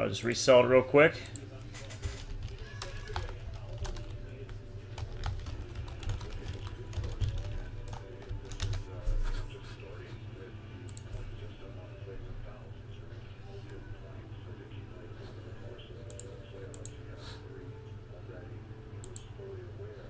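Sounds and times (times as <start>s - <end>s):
computer keyboard typing: 2.0s - 8.9s.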